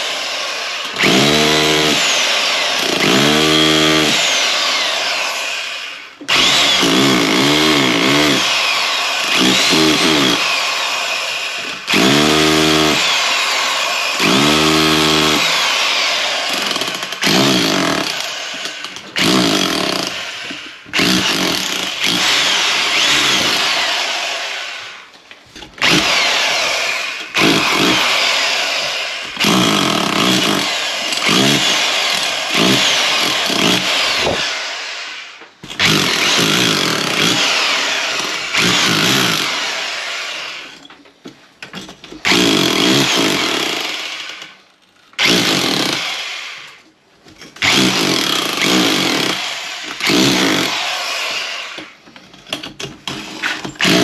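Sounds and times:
hammer drill chiselling plaster: 0:00.0 - 0:41.0, 0:42.2 - 0:54.0.

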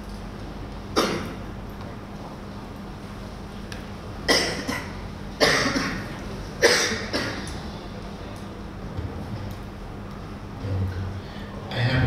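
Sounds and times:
person coughing: 0:01.0 - 0:01.4, 0:04.3 - 0:07.5.

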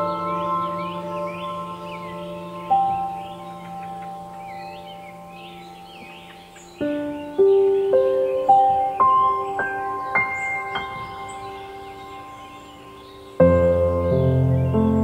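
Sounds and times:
ambient bell-like music: 0:00.0 - 0:15.0
birdsong chirps: 0:00.0 - 0:15.0.

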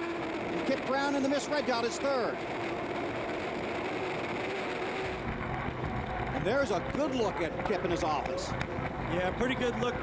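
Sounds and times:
hydroplane engine at speed: 0:00.0 - 0:10.0.

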